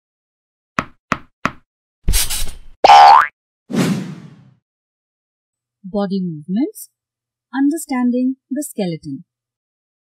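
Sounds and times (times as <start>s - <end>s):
rising cartoon boing: 2.9s - 3.3s.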